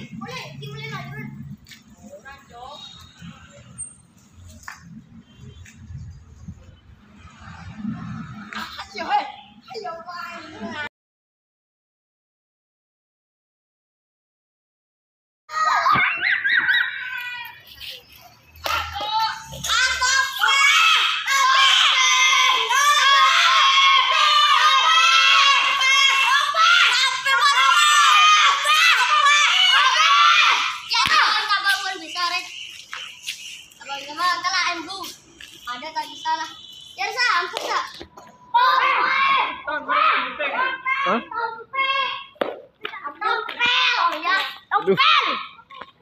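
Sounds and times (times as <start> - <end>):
children shouting and screaming: 15.5 - 46.0
high-pitched vocal calls: 30.6 - 37.3.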